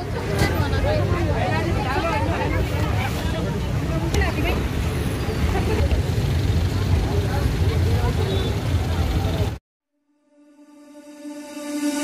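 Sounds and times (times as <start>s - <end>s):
crowd voices: 0.0s - 9.6s
low rumble of traffic: 0.0s - 9.6s.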